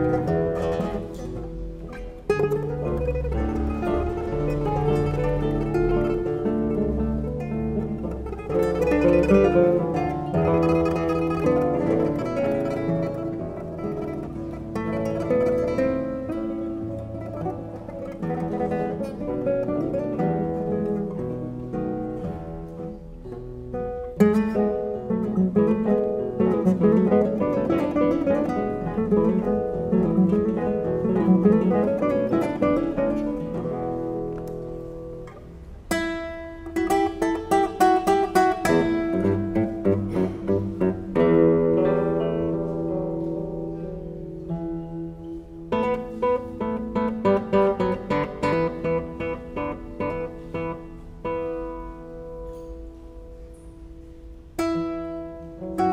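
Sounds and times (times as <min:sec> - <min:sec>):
classical guitars playing: 0:00.0 - 0:55.9.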